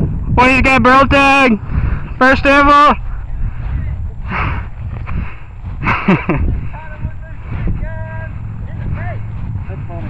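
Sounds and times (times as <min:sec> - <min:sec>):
low microphone rumble: 0:00.0 - 0:10.0
man laughing: 0:05.8 - 0:06.8.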